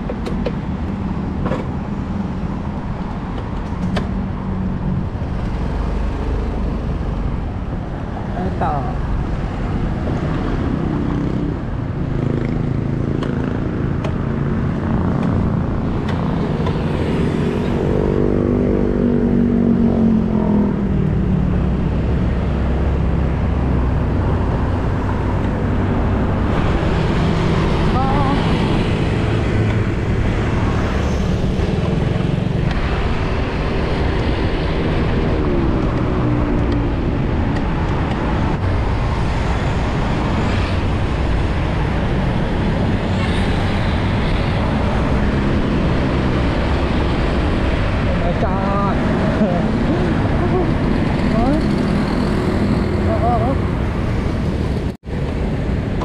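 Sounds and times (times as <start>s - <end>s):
wind and road noise: 0.0s - 56.0s.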